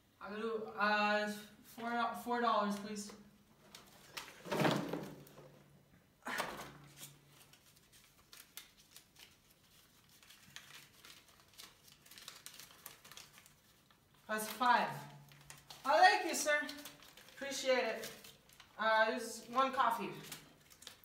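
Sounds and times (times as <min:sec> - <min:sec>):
paper banknotes rustling: 0:06.8 - 0:18.8, 0:19.4 - 0:21.0.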